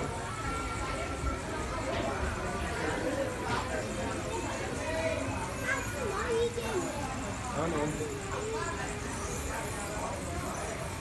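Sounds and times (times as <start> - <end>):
background chatter of visitors: 0.0 - 11.0
thin steady tone: 0.0 - 11.0.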